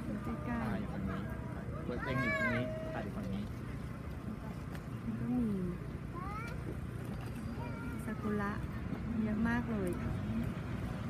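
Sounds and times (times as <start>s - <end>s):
background murmur: 0.0s - 11.0s.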